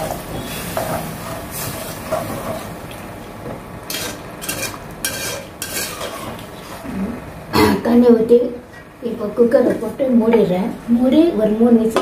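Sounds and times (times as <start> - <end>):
spoon scraping against pot: 3.9 - 6.8
spoon stirring curry in a pot: 3.9 - 6.8.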